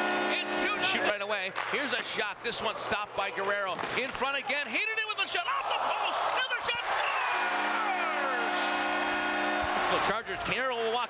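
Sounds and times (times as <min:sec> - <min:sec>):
arena goal horn: 0:00.0 - 0:01.2, 0:07.1 - 0:10.2
crowd noise: 0:00.6 - 0:11.0.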